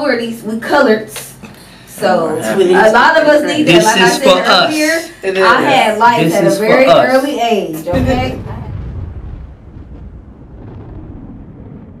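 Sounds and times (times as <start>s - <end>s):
low rumbling sound effect: 7.9s - 12.0s.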